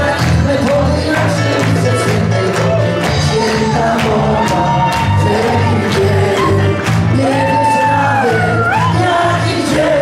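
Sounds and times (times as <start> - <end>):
live band playing dance tune: 0.0 - 10.0.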